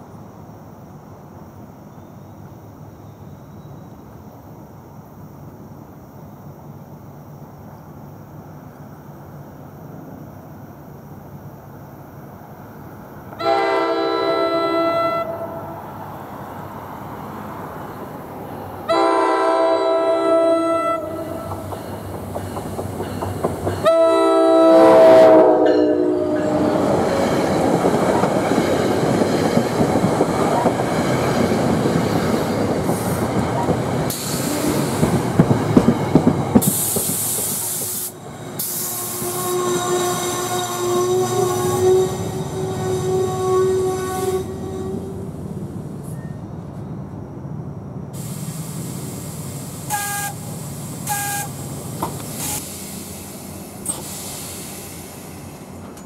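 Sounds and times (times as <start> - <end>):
train rumble and wheel clatter: 0.0 - 56.0
train air horn blast: 13.4 - 15.8, 18.9 - 21.6, 23.8 - 26.9, 36.7 - 45.3, 49.9 - 50.4, 51.0 - 51.5.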